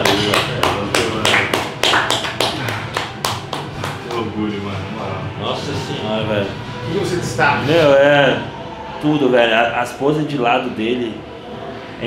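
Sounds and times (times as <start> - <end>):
person clapping rapidly: 0.0 - 4.4
faint music: 0.0 - 12.0.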